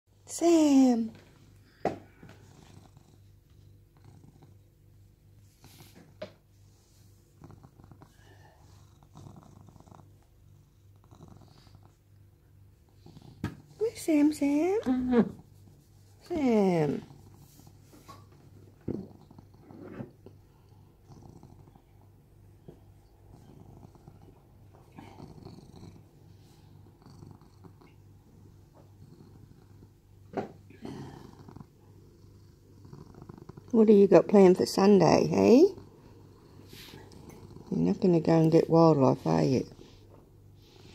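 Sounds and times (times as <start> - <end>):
cat purring: 0.3 - 40.9.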